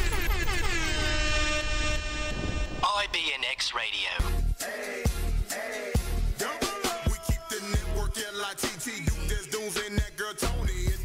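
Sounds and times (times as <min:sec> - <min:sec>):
radio jingle held note: 0:02.3 - 0:04.3
person speaking: 0:02.8 - 0:04.3.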